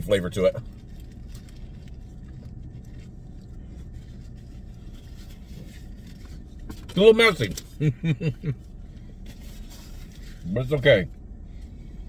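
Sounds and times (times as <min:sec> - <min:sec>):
car engine idling: 0:00.0 - 0:12.0
foil wrapper rustling: 0:00.6 - 0:06.7.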